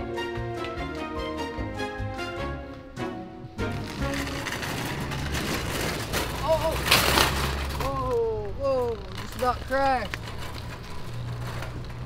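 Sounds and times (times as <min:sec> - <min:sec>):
cart scraping skid: 0:03.6 - 0:08.1, 0:09.1 - 0:12.0
shopping cart wheels rolling: 0:03.6 - 0:12.0.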